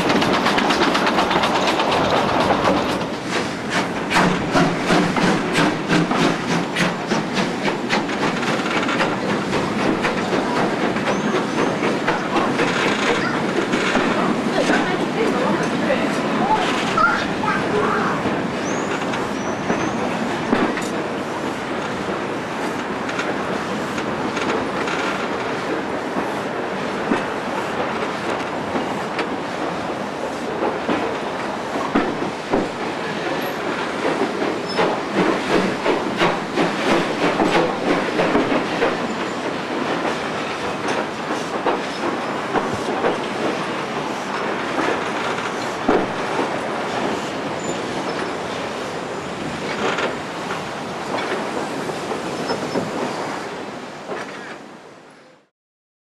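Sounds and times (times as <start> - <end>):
wheels clattering over rail joints: 0.0 - 18.0, 21.8 - 48.6
train rumbling on rails: 0.0 - 55.5.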